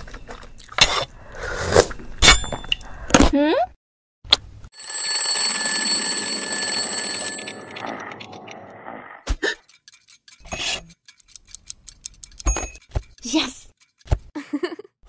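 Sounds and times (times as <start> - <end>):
alarm clock bells ringing: 4.8 - 8.2
clock ticking: 9.6 - 14.1.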